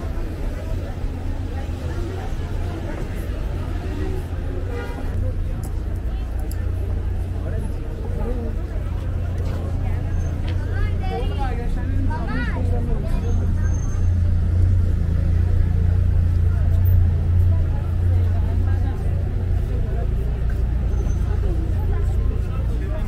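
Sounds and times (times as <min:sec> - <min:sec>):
low traffic rumble: 0:00.0 - 0:23.0
passers-by talking: 0:00.0 - 0:23.0.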